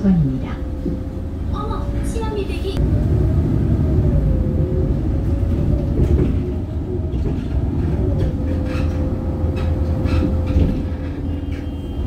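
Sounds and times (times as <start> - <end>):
bus engine and road rumble: 0.0 - 12.0
drivetrain whine: 2.8 - 11.9.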